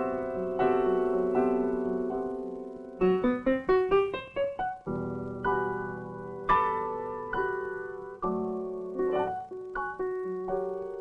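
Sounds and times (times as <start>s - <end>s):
piano notes climbing: 0.0s - 11.0s.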